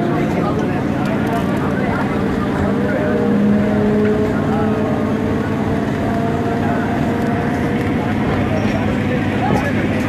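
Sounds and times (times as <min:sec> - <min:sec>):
passengers' voices: 0:00.0 - 0:10.0
train wheels rumbling on rails: 0:00.0 - 0:10.0.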